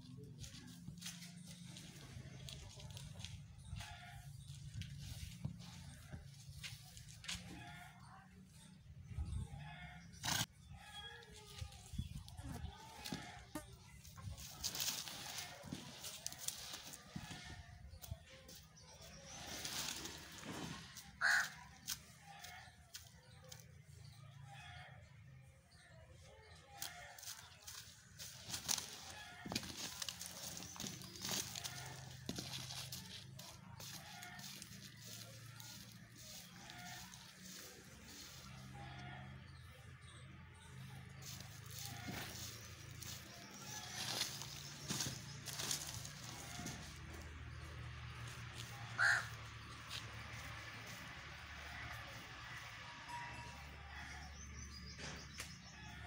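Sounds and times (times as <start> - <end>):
donkey rolling in dirt: 0.0 - 8.0, 8.6 - 24.8, 26.8 - 56.0
harsh crow-like caw: 21.2 - 21.6, 49.0 - 49.4.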